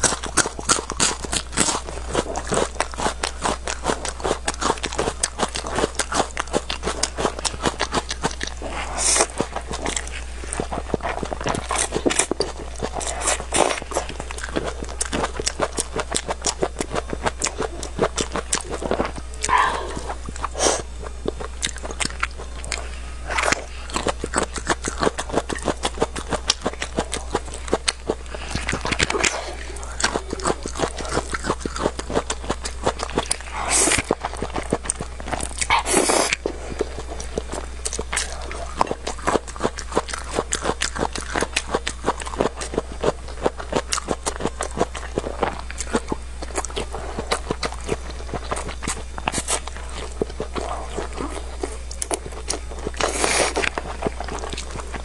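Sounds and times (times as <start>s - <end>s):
steady low hum: 0.0s - 55.0s
wet chewing and lip smacks: 0.0s - 55.0s.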